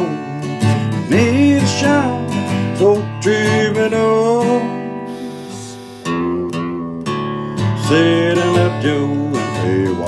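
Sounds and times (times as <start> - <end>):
guitar chords strummed: 0.0 - 10.0
man singing: 0.0 - 10.0.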